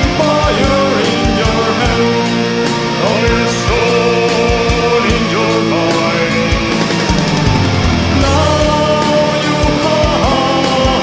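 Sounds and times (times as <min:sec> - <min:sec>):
dense held metal chords: 0:06.9 - 0:10.0
pitch-gliding lines: 0:07.0 - 0:09.6.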